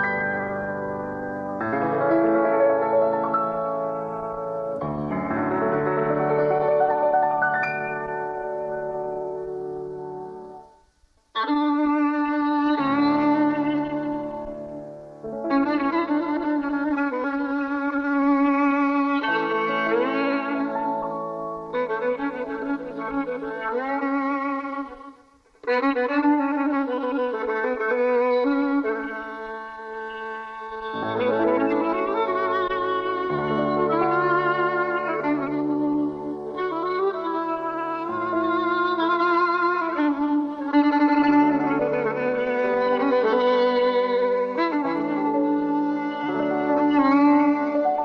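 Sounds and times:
solo violin playing slowly: 0.0s - 48.0s.

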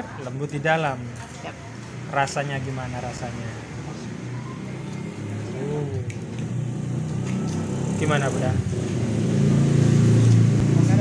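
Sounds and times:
vehicle engine low hum: 3.8s - 11.0s.

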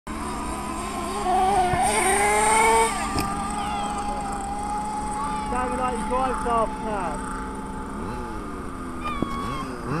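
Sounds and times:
remote-control car motor whining: 0.1s - 10.0s.

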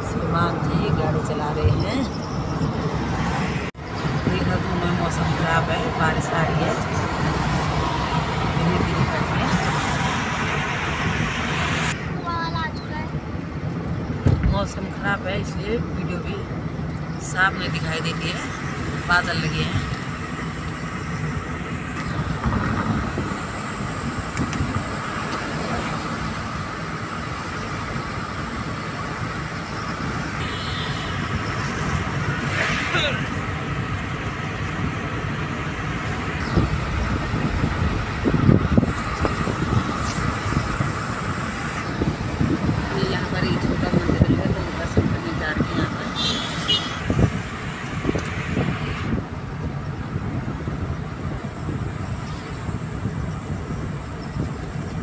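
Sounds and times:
car road and engine noise: 0.0s - 55.0s.

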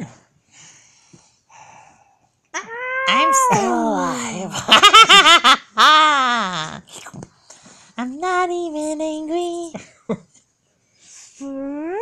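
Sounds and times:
child wailing in puppet voice: 2.6s - 4.2s.

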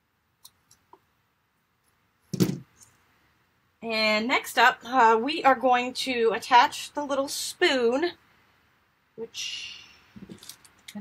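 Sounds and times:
small knock: 2.3s - 2.7s.

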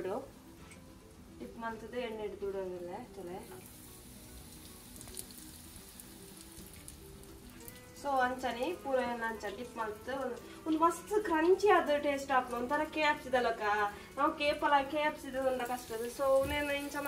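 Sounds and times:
chicken frying in oil: 1.4s - 17.0s.

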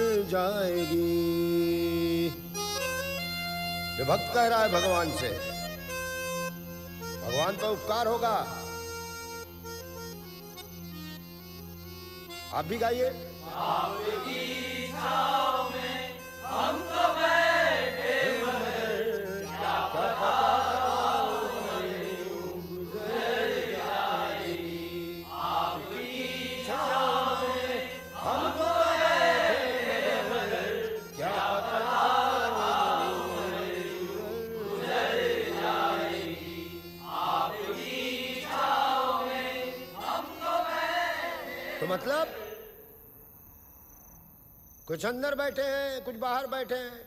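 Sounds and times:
men chanting devotional song: 0.0s - 5.9s, 6.6s - 8.9s, 12.2s - 43.0s
steady drone: 13.4s - 40.7s.

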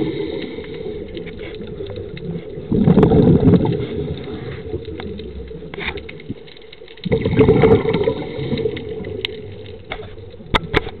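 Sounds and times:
underwater water surge rushing: 0.0s - 5.0s, 7.0s - 9.5s.

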